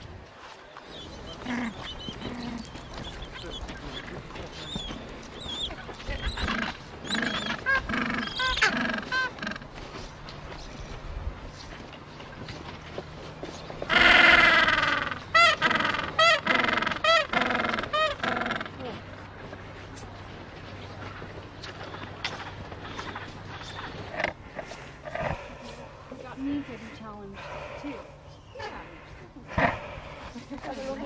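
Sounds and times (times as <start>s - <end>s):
penguins braying: 1.1s - 10.1s, 13.8s - 19.1s.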